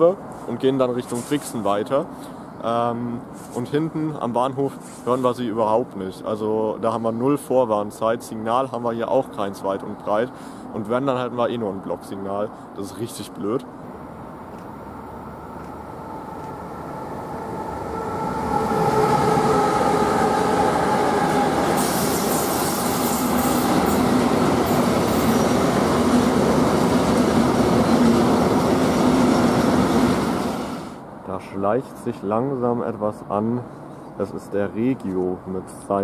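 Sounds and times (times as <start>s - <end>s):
electric locomotive whine: 13.8s - 31.0s
freight wagons rumbling past: 15.0s - 30.6s.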